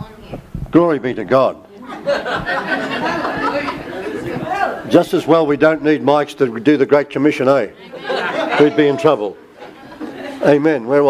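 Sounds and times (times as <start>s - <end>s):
indistinct chatter in a hall: 0.0s - 11.0s.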